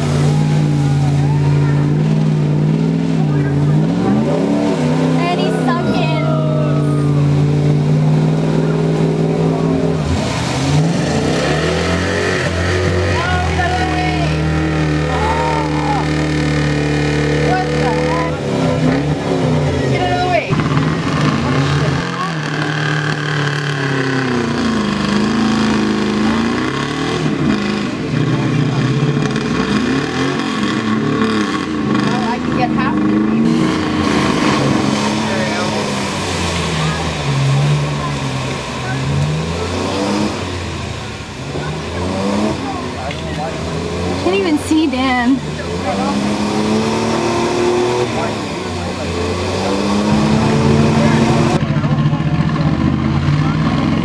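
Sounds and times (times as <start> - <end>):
truck engine revving hard: 0.0 - 54.0.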